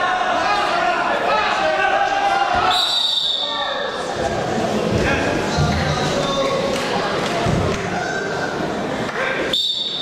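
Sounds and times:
spectators and coaches shouting: 0:00.0 - 0:04.1
referee's whistle blast: 0:02.7 - 0:03.6, 0:09.5 - 0:10.0.

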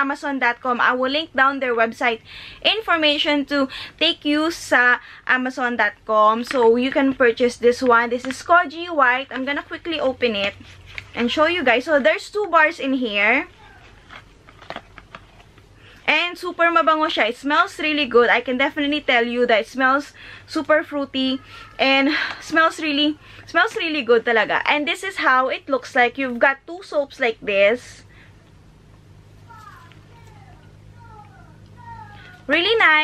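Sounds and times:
steady low hum: 0:00.0 - 0:33.0
packaging clicks and crinkles: 0:13.7 - 0:15.7.

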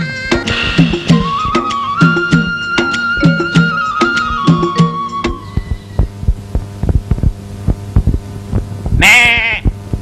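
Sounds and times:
steady low hum: 0:00.0 - 0:10.0
soft low thumps: 0:05.4 - 0:09.0, 0:09.6 - 0:10.0.

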